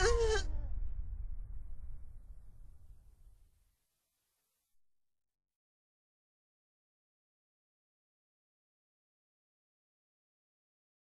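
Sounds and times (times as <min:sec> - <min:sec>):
animated character groaning: 0:00.0 - 0:00.5.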